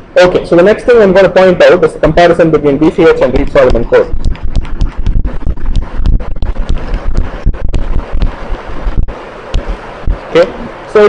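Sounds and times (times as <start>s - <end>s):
handwriting taps and thumps: 3.2s - 10.2s.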